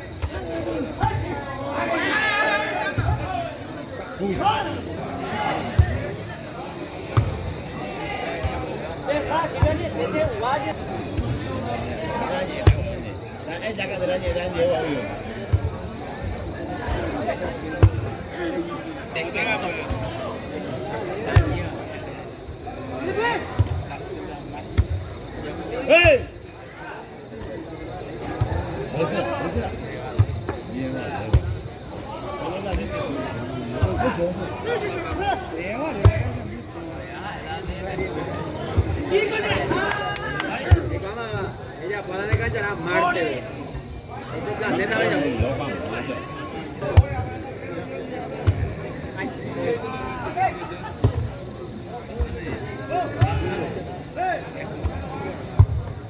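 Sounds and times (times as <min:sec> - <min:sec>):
spectators chatter: 0:00.0 - 0:56.0.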